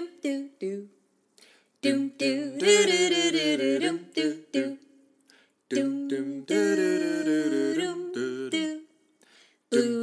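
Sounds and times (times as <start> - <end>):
a cappella singing: 0.0 - 10.0.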